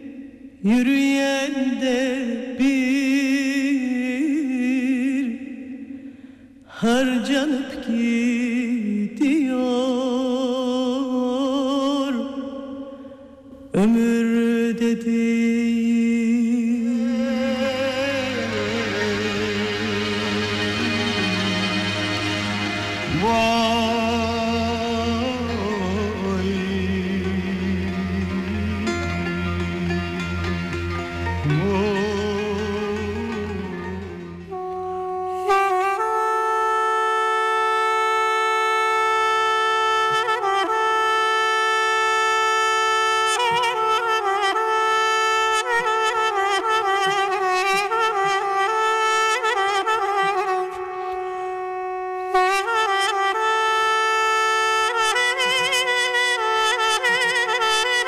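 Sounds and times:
person singing long vibrato note: 15.4s - 58.0s.

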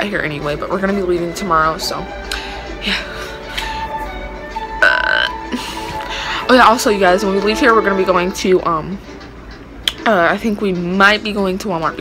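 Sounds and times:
loud burp: 4.8s - 5.4s.

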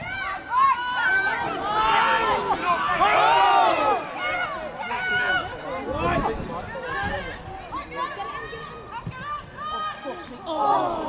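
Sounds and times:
voices shouting and calling: 0.0s - 11.0s.

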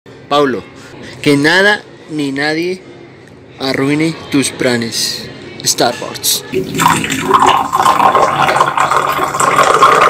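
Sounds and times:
coffee pouring into mug: 6.6s - 10.0s.

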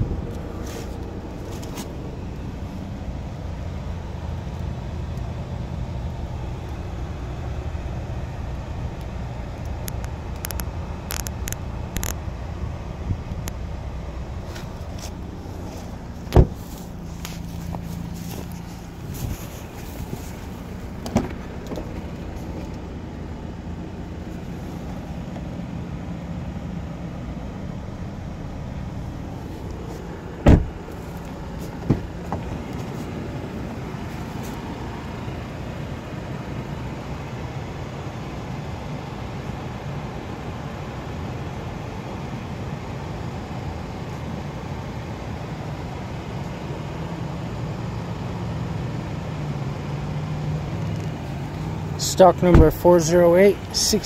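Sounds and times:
car engine idling: 0.0s - 54.0s
sharp thumps: 15.7s - 22.7s, 30.4s - 32.6s.

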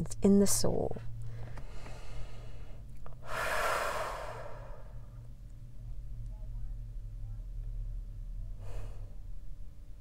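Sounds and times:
faint low hum: 0.0s - 10.0s
woman breathing: 1.2s - 5.2s, 8.5s - 9.4s.

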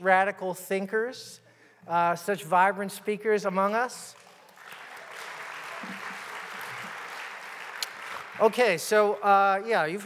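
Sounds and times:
audience applauding: 4.2s - 10.0s.

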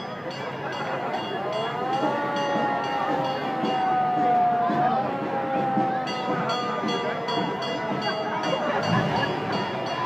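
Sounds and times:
fire engine siren wailing: 0.8s - 9.9s.

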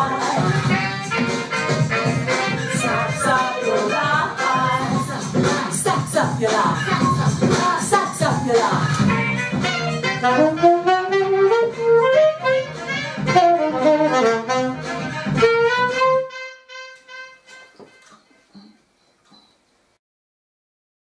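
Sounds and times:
alto saxophone melody: 0.0s - 5.4s, 8.8s - 18.3s
backing track: 0.0s - 18.8s.

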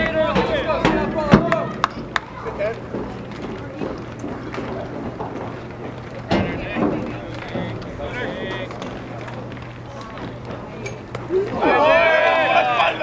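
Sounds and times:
spectators calling out: 11.2s - 13.0s.

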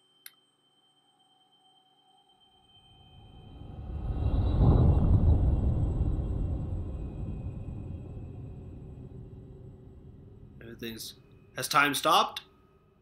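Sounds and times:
low rumbling whoosh: 3.0s - 11.5s.

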